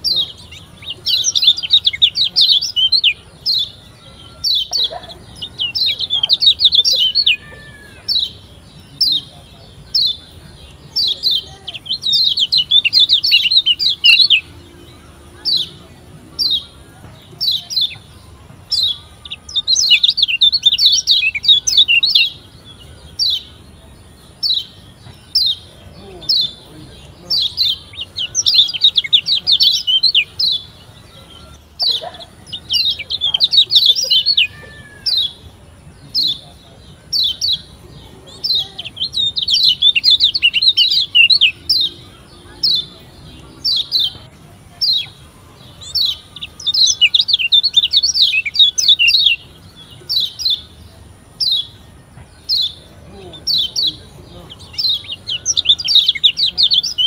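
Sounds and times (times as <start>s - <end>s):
bird chattering trills: 0.0s - 57.0s.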